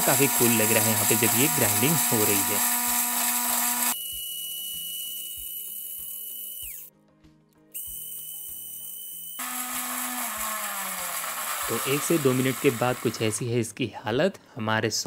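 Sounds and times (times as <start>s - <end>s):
mixer grinder grinding: 0.0s - 6.9s, 7.8s - 13.4s.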